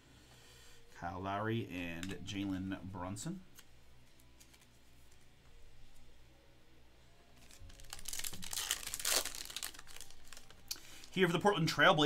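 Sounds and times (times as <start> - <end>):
foil card pack tearing and crinkling: 7.4 - 11.2.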